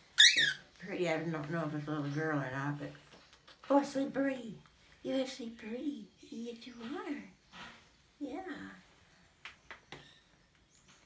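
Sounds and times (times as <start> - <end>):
cockatiel chirp: 0.2 - 0.6.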